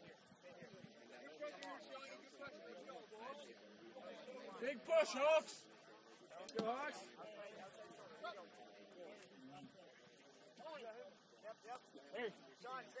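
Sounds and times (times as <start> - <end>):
voices shouting and calling out: 0.0 - 13.0.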